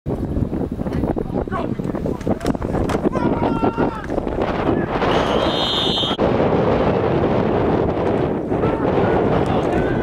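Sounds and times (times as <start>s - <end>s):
wind buffeting microphone: 0.1s - 10.0s
referee's whistle: 5.1s - 6.2s.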